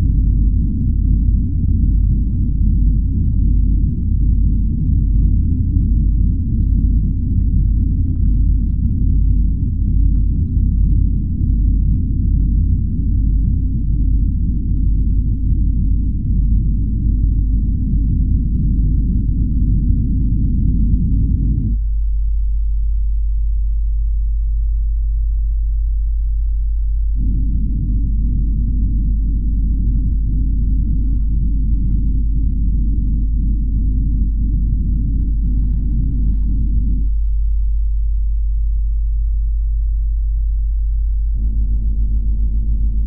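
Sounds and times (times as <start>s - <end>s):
deep low drone: 0.0s - 43.0s
deep low rumble: 0.0s - 43.0s
steady deep hum: 0.0s - 43.0s.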